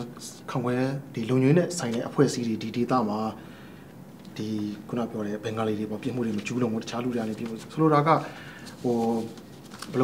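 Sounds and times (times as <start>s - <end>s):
man talking: 0.0s - 3.4s, 4.3s - 10.0s.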